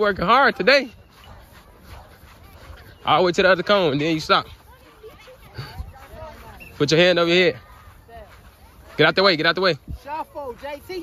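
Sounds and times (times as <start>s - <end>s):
distant children's voices: 0.8s - 9.0s.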